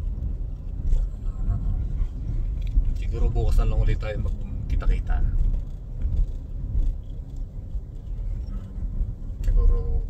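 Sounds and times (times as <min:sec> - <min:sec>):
road and engine noise: 0:00.0 - 0:10.0.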